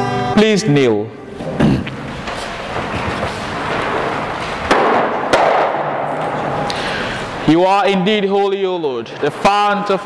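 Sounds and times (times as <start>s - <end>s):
rustle and shuffle of people: 1.4s - 4.7s.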